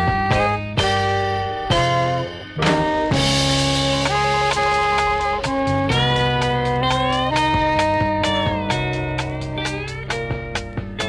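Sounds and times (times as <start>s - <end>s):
folk music with plucked guitar: 0.0s - 11.0s.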